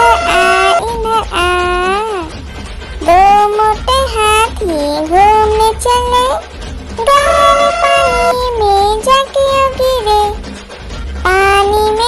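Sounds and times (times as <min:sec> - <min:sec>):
child singing: 0:00.0 - 0:02.4, 0:03.0 - 0:06.4, 0:07.0 - 0:10.4, 0:11.2 - 0:12.0
music backing: 0:00.0 - 0:12.0.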